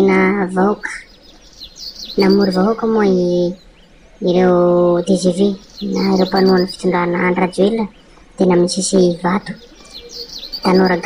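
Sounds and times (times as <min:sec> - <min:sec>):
small bird chirping: 0:00.0 - 0:11.0
person speaking loudly: 0:02.2 - 0:03.6, 0:04.2 - 0:09.6, 0:10.6 - 0:11.0.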